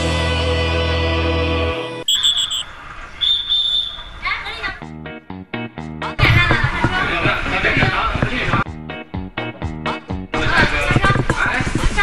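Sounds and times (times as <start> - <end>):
high electronic beeps: 2.0 - 2.7.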